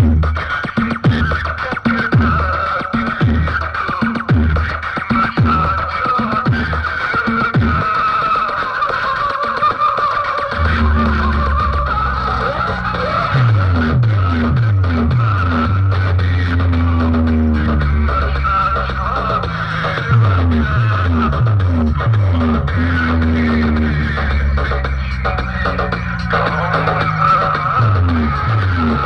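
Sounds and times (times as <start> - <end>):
loud dj music with heavy bass: 0.0 - 29.0
falling bass sweeps: 10.6 - 29.0.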